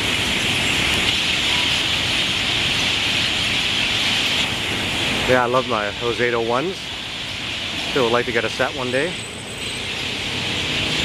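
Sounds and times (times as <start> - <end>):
passing vehicles rumble: 0.0 - 11.0
steady high hiss: 0.0 - 11.0.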